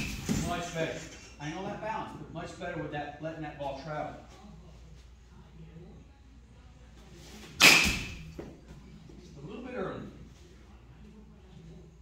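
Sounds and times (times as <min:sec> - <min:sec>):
bat hitting a softball: 0:07.6 - 0:08.3.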